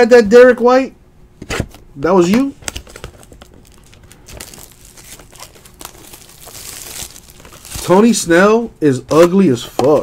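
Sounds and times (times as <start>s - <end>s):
person speaking: 2.0s - 2.6s, 4.6s - 10.0s
foil wrapper crinkling: 2.6s - 8.3s.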